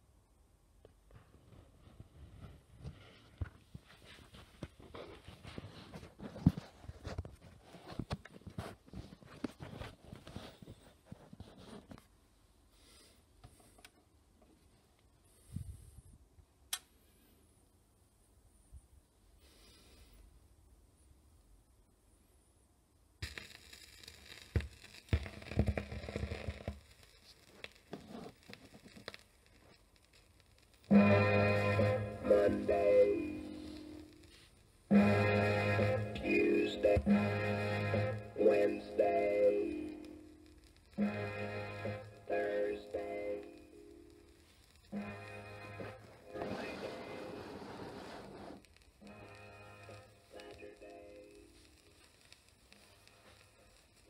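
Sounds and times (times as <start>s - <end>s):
record crackles and pops: 0.7s - 15.5s, 23.0s - 54.0s
record surface noise: 0.8s - 15.1s, 23.2s - 54.0s
loud music: 34.9s - 39.0s.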